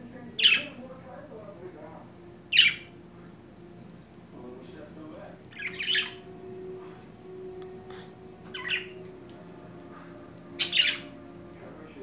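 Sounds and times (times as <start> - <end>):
budgies calling: 0.2 - 0.8, 2.5 - 3.0, 4.7 - 12.0.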